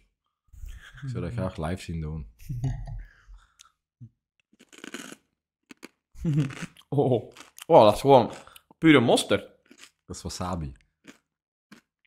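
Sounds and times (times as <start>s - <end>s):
peanut crunching: 4.4s - 12.0s.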